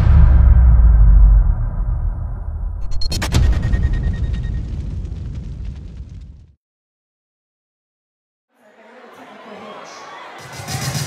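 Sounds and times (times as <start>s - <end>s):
deep boom with crackling: 0.0s - 6.6s.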